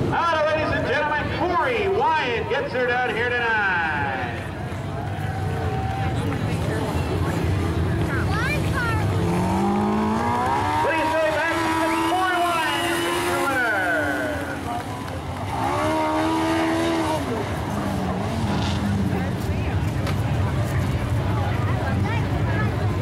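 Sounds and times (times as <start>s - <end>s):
race car engine revving: 5.3s - 23.0s.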